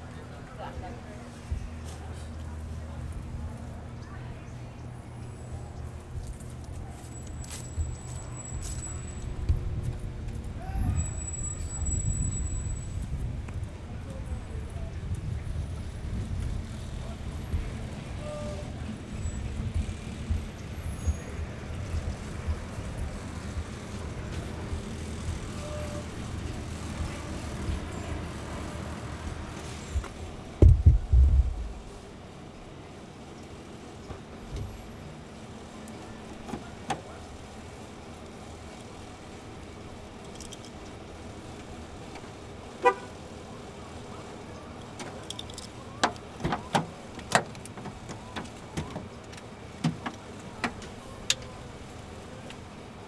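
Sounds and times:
faint voices: 0.0s - 9.6s, 10.2s - 53.0s
wind noise: 9.2s - 18.6s, 29.9s - 32.0s
low background rumble: 29.2s - 32.7s
car horn toot: 42.8s - 43.2s.

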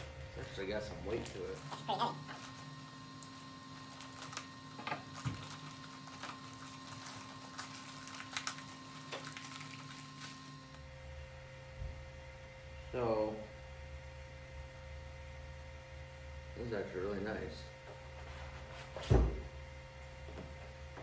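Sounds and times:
plastic bag rustling: 0.0s - 10.8s
low electrical hum: 0.0s - 21.0s.

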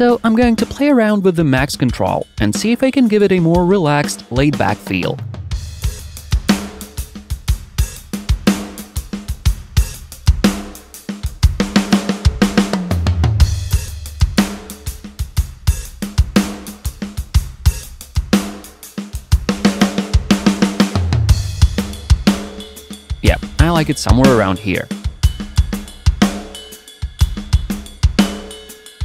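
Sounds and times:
drum kit groove: 0.0s - 29.0s
low drum fill: 23.2s - 25.6s.

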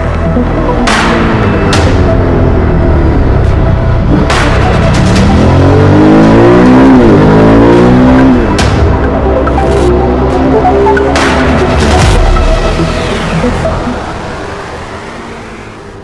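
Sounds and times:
background music with heavy hits: 0.0s - 14.3s
motorcycle engine revving: 0.8s - 16.0s.

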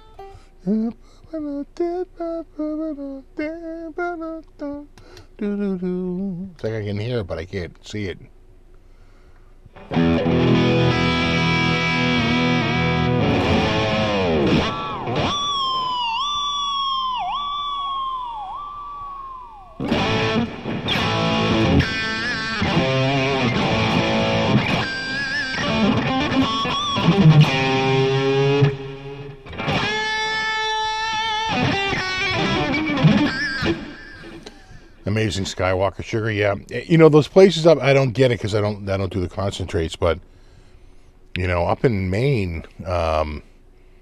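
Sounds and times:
distorted electric guitar: 9.7s - 35.0s.

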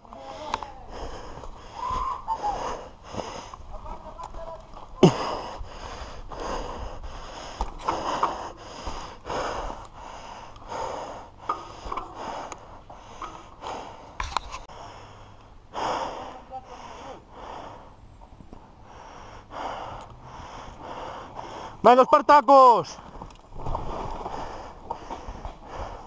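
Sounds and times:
person breathing hard: 0.2s - 3.7s, 5.0s - 18.0s, 18.6s - 21.9s, 23.8s - 26.0s.

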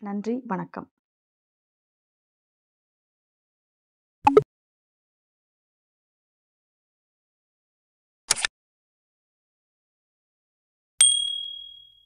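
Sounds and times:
bright ding: 11.0s - 12.0s.

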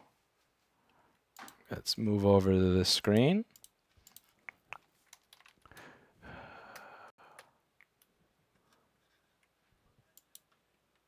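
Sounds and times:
computer mouse clicks: 3.5s - 5.9s, 10.1s - 11.0s.

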